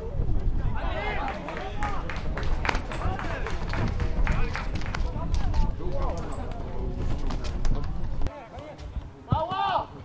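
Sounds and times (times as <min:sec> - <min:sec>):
voices shouting and calling: 0:00.6 - 0:05.5.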